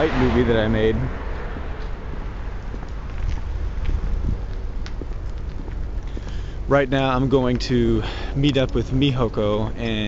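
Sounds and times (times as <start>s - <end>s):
traffic rumble: 0.0s - 10.0s
wind on microphone: 1.1s - 5.6s.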